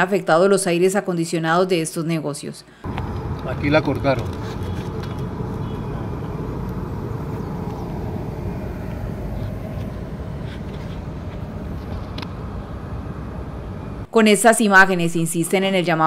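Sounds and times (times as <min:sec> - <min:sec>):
low outdoor rumble: 0:02.8 - 0:14.1.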